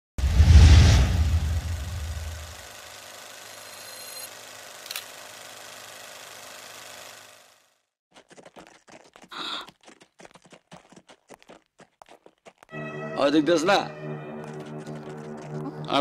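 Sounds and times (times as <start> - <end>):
deep boom: 0.2 - 2.6
high ringing tone: 3.4 - 4.3.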